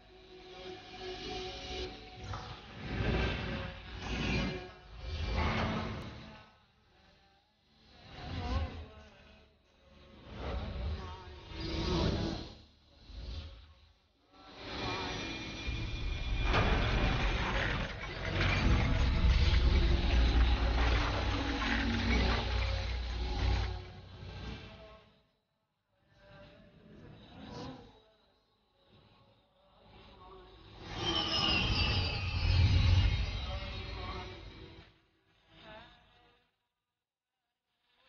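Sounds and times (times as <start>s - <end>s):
low rumble: 15.7s - 24.5s.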